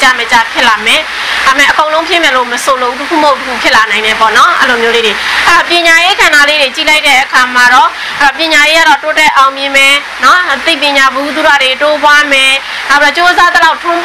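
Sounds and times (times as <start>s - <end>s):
woman speaking: 0.0s - 14.0s.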